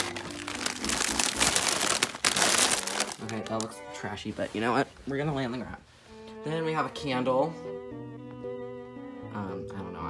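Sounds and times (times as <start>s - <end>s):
crinkling and rustling: 0.0s - 5.8s.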